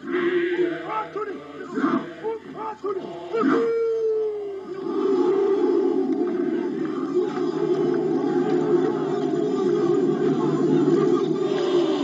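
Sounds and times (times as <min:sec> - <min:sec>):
many voices chanting in a drone: 0:00.0 - 0:12.0.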